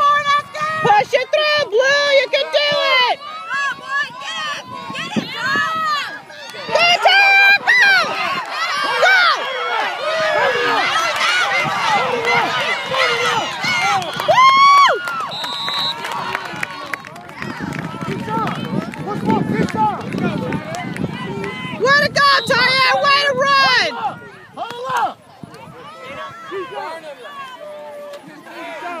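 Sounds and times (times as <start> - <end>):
crowd shouting: 0.0 - 29.0
outdoor hubbub: 0.0 - 29.0
people calling out and talking: 0.0 - 29.0.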